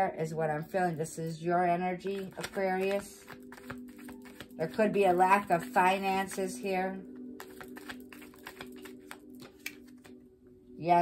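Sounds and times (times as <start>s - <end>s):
faint background music drone: 0.0s - 11.0s
cards being shuffled: 2.0s - 10.2s.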